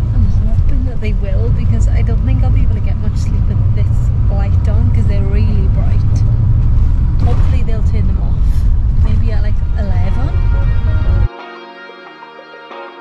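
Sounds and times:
people talking: 0.0 - 6.3, 7.2 - 11.3
vehicle cabin rumble: 0.0 - 11.3.

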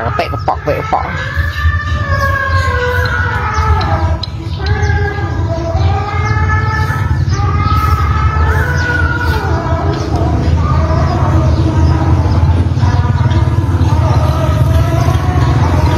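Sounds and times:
sustained sung melody: 0.0 - 15.9.

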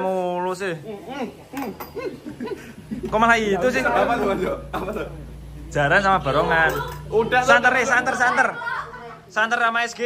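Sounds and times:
young men laughing: 1.6 - 5.4, 6.6 - 9.4.

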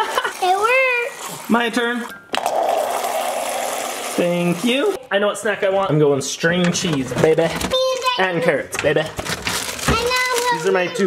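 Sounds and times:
water pouring into plastic cup: 0.0 - 5.0.

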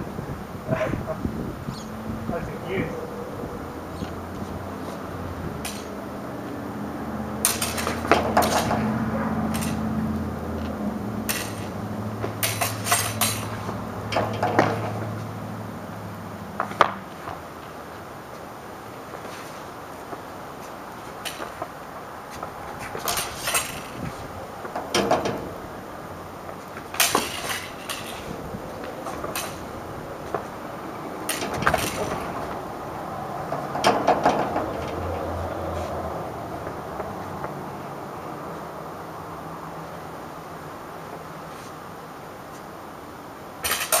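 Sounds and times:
rapier blades clashing: 5.6 - 6.0, 7.4 - 8.9, 9.5 - 10.0, 11.2 - 15.1, 22.8 - 24.1, 26.8 - 29.8, 43.6 - 44.0.

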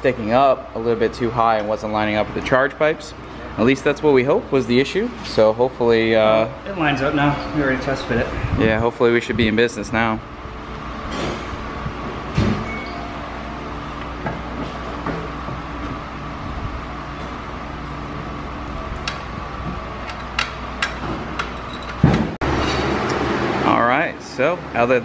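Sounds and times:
droning shop hum: 0.0 - 25.0.

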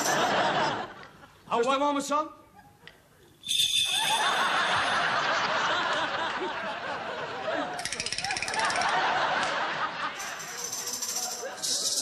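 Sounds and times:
audience laughter: 0.0 - 1.4, 4.0 - 12.0
maracas rattling: 3.4 - 4.5, 7.8 - 9.1, 10.2 - 12.0.

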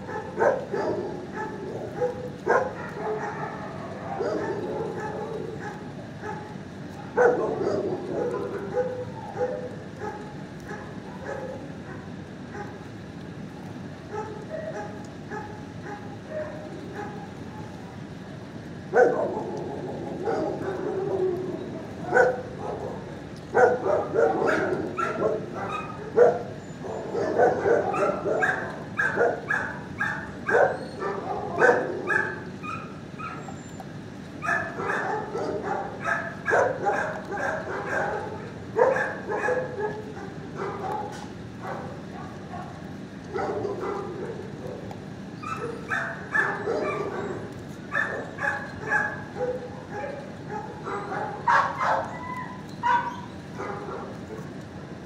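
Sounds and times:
dogs barking and yipping: 0.0 - 55.0.

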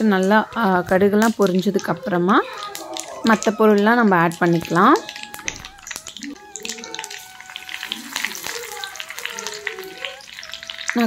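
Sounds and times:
seeds sizzling and popping in oil: 0.0 - 11.0.

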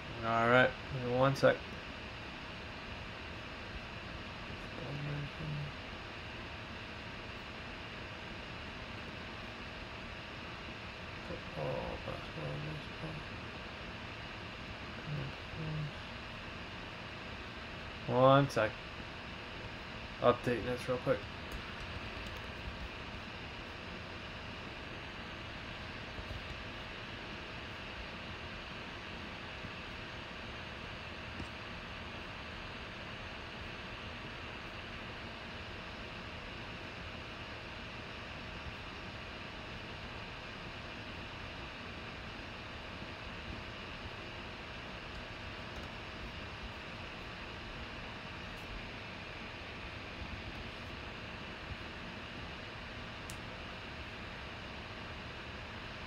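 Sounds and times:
faint constant hum: 0.0 - 56.0.

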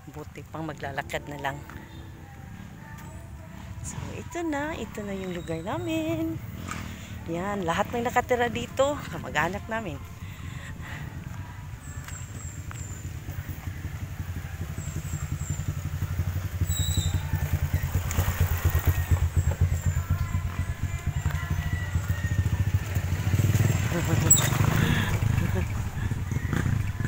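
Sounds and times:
small motorcycle engine passing: 0.9 - 27.0.

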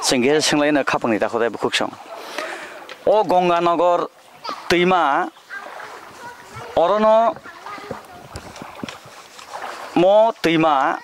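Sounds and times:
moving water hiss: 0.1 - 11.0
wind on microphone: 6.0 - 10.0.

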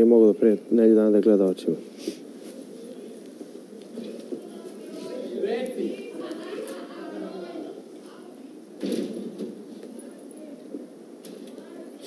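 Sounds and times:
hushed muffled talk: 0.0 - 12.0.

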